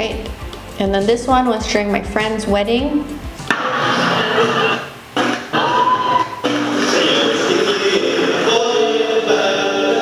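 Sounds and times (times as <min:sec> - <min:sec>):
group of men singing a serenade: 0:06.5 - 0:10.0.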